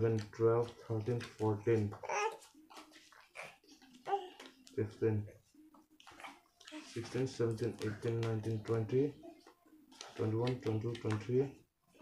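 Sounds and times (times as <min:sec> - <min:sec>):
playing cards clicking and rustling: 0:00.0 - 0:04.9, 0:06.0 - 0:09.1, 0:09.9 - 0:11.6.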